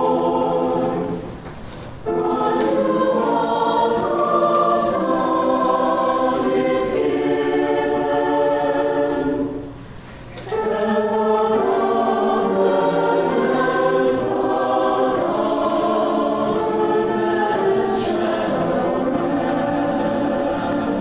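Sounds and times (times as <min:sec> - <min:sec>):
church choir singing: 0:00.0 - 0:21.0.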